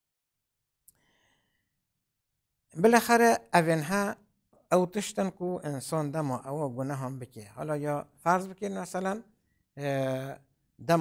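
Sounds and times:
man's soft breath: 0.9 - 1.9.

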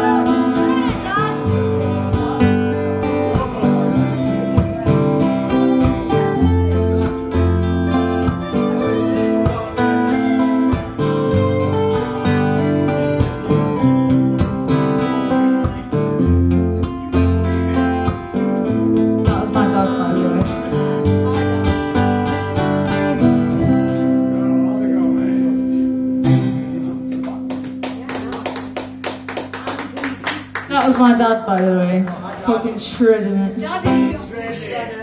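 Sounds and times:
strummed guitar chords: 0.0 - 29.3, 33.2 - 34.3
acoustic guitar lead solo: 0.0 - 35.0
people clapping: 26.8 - 33.1.

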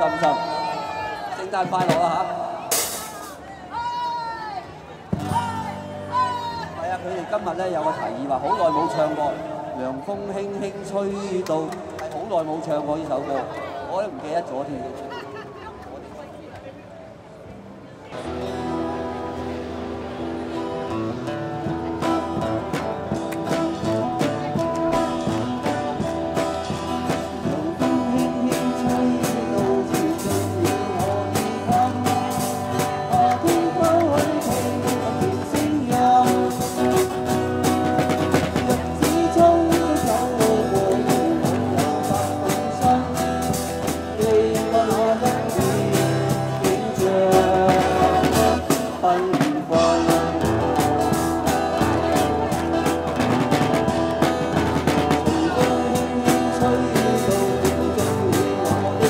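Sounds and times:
drum kit: 1.6 - 3.4, 20.3 - 59.0
bass line: 18.2 - 59.0
electric guitars: 18.2 - 59.0
person singing: 21.6 - 59.0.

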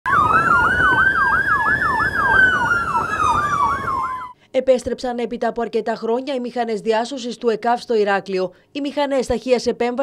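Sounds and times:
emergency siren yelp and wail: 0.0 - 4.4.

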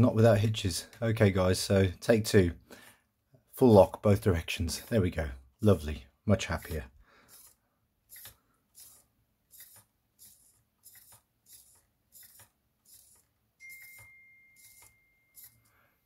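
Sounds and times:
steering servo buzzing: 7.2 - 13.3
thin high-pitched tone: 13.6 - 15.9.

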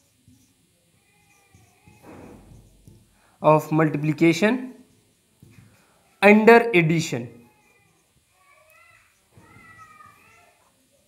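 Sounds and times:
marker squeaking on whiteboard: 0.0 - 3.0, 7.4 - 10.7.

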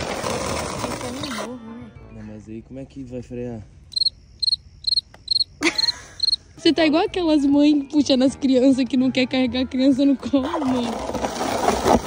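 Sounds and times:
crickets chirping: 2.3 - 6.6.

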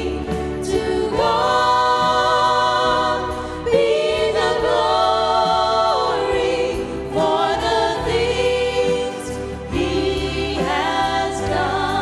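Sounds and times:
youth vocal ensemble singing gospel: 0.0 - 12.0.

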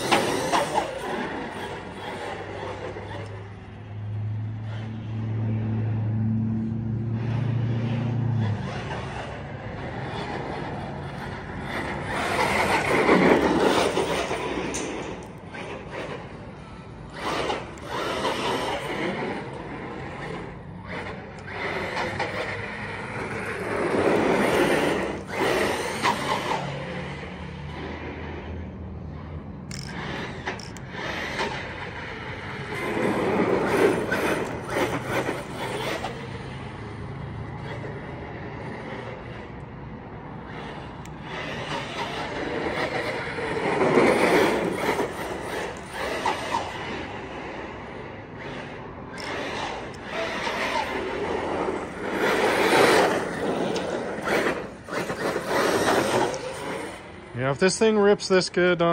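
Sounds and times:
electric motor whining: 0.0 - 5.6, 6.9 - 28.2, 29.7 - 39.7, 40.4 - 57.3
tyre noise on rough asphalt: 8.4 - 28.4, 29.7 - 57.9.

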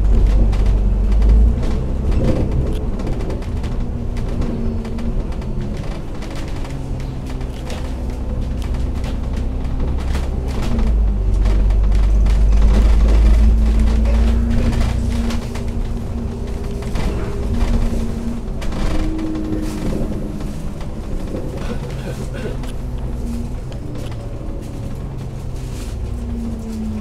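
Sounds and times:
bus body rattling: 0.0 - 27.0
bus diesel engine drone: 0.0 - 27.0.

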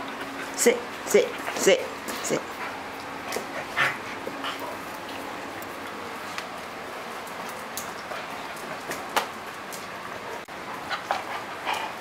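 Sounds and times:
dogs playing and scuffling: 0.0 - 12.0.

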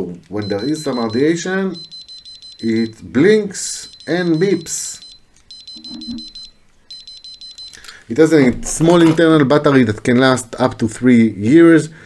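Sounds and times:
rapid high-pitched beeping: 0.4 - 3.0, 3.8 - 7.8.

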